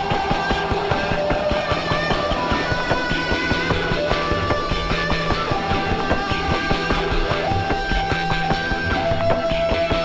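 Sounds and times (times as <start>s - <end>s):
fast steady drumbeat: 0.0s - 10.0s
sustained guitar notes: 0.0s - 10.0s.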